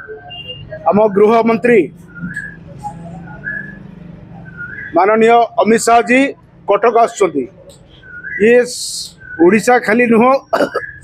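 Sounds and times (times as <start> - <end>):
high whistle-like notes: 0.0 - 5.0.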